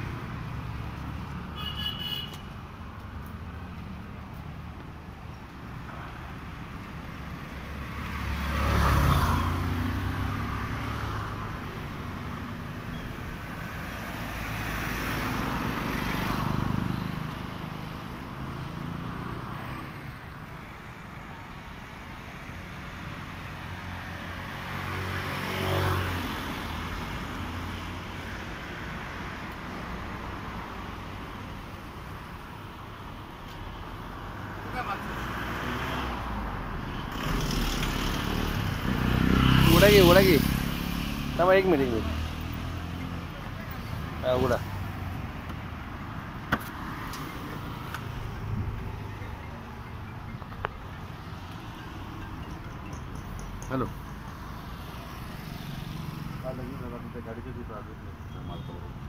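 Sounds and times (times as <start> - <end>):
low traffic rumble: 0.0 - 25.5, 26.2 - 59.0
vehicles passing: 0.0 - 59.0.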